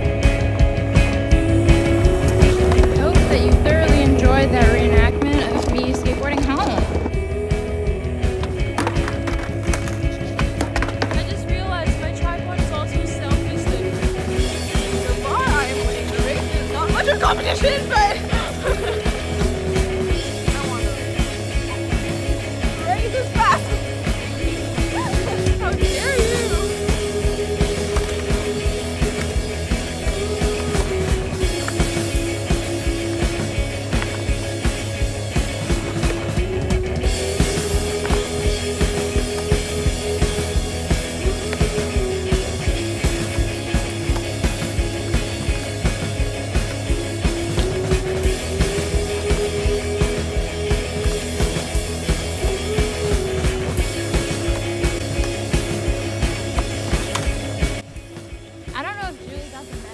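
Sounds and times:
background music with drum beat: 0:00.0 - 0:59.9.

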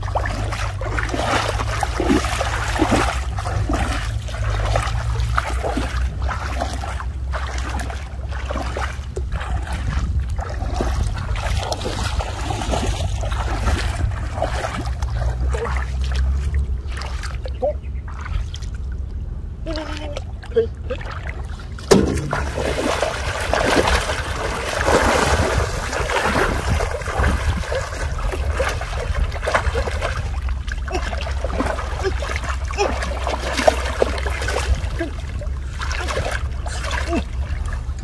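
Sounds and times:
floodwater splashing and sloshing: 0:00.0 - 0:38.0
steady low rumble: 0:00.0 - 0:38.0
sharp knock: 0:21.9 - 0:22.6.

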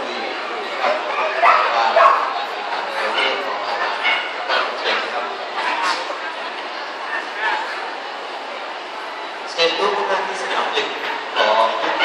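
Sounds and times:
murmur of crowd: 0:00.0 - 0:12.0
dog barking: 0:01.4 - 0:02.3.

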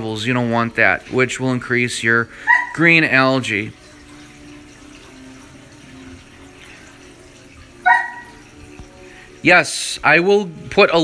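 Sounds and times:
water running and trickling: 0:00.0 - 0:11.0.

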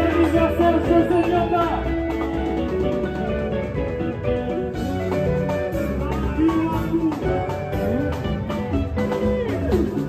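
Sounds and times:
electric guitar lines: 0:00.0 - 0:10.0
rumba band playing: 0:00.0 - 0:10.0
steady drum beat: 0:00.0 - 0:10.0.

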